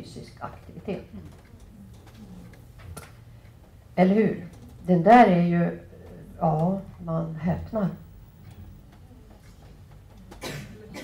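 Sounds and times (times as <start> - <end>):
steady low hum: 0.0 - 11.0
faint murmur: 0.6 - 4.9, 5.6 - 11.0.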